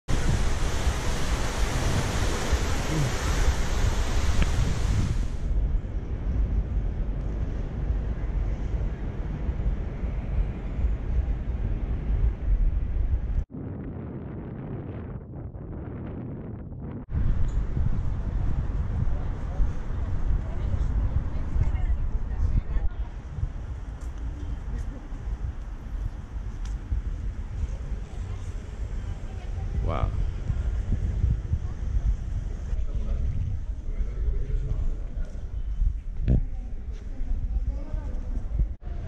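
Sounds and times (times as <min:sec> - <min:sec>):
wind buffeting microphone: 0:00.1 - 0:39.0.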